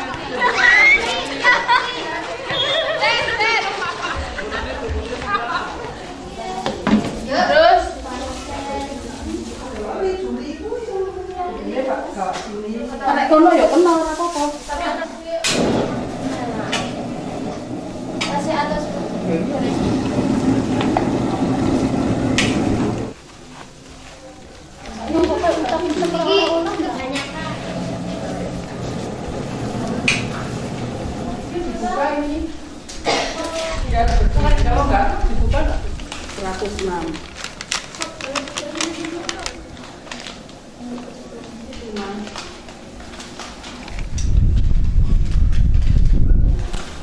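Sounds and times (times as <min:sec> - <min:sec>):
girls calling out and chattering: 0:00.0 - 0:12.2, 0:24.7 - 0:36.8.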